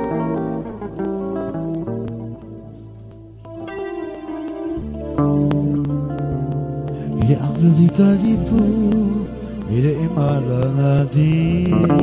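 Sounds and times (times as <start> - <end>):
strummed guitar chords: 0.0 - 12.0
low male voice singing: 7.1 - 12.0.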